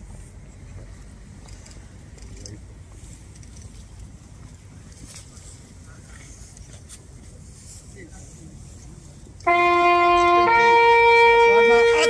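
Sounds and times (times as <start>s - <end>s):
faint indistinct voices: 4.4s - 12.0s.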